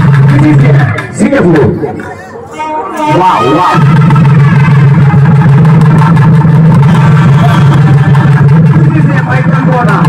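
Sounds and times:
barrel drums beating rapidly: 0.0 - 2.1, 3.8 - 10.0.

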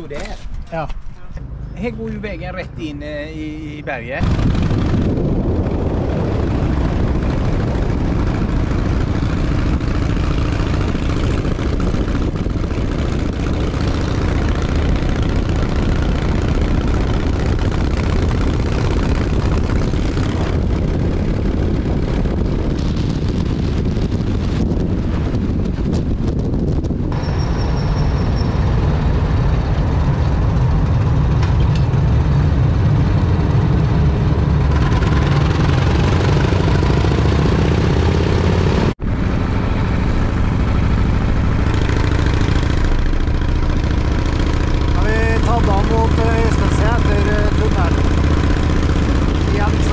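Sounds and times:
wind and road noise: 0.0 - 49.9
motorcycle engine running: 3.2 - 49.9.

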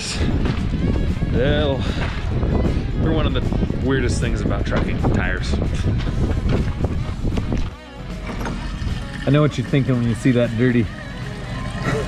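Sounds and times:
wind rumbling on microphone: 0.0 - 7.8
low hum: 8.2 - 12.0.

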